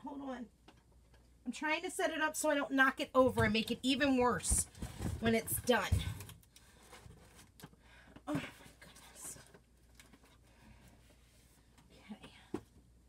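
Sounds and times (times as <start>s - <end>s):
cardboard packages rustling and knocking: 3.2s - 7.7s.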